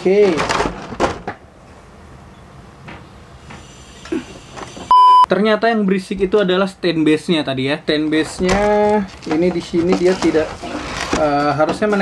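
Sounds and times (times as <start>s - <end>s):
test-tone beep: 4.9s - 5.3s.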